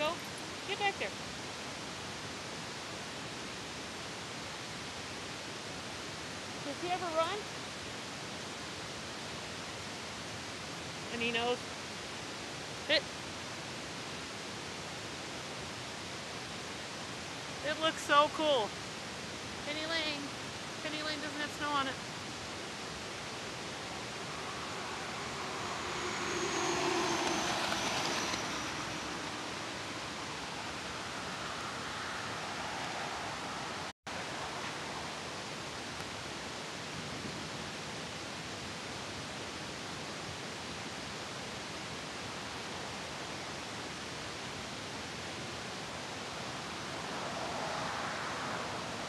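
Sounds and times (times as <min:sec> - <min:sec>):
car road noise from cabin: 0:21.4 - 0:35.6, 0:45.6 - 0:49.0.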